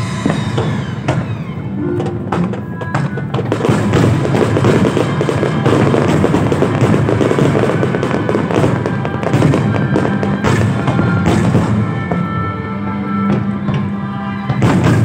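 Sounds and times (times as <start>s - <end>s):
fireworks bangs and crackling: 0.0s - 15.0s
orchestra playing: 0.0s - 15.0s.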